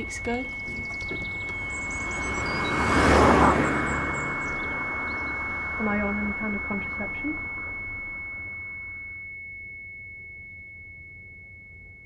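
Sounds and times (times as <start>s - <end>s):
high-pitched pure tone: 0.0s - 12.0s.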